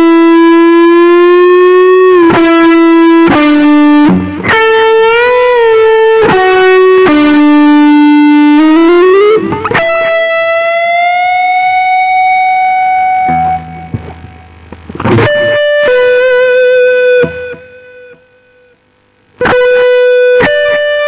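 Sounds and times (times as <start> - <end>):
distorted electric guitar lead: 0.0 - 21.0.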